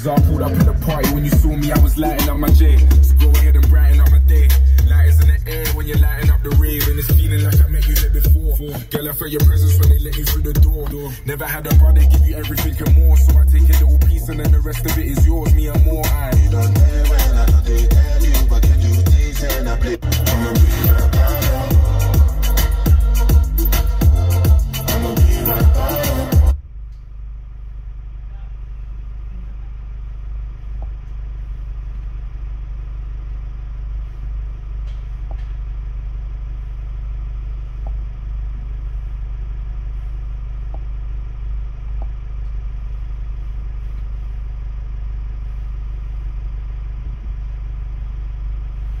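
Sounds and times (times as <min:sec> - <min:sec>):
music: 0:00.0 - 0:26.6
van engine idling: 0:00.0 - 0:49.0.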